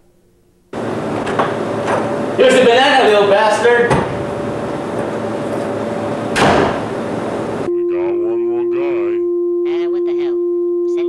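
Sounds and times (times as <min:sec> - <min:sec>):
door shutting: 0:01.1 - 0:02.1, 0:03.7 - 0:07.0.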